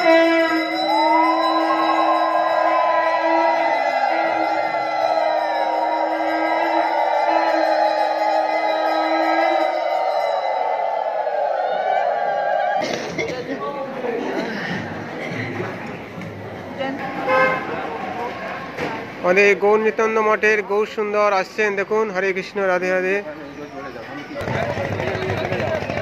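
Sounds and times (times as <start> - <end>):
conch shell blown: 0.0 - 10.5
crowd of overlapping voices: 0.0 - 26.0.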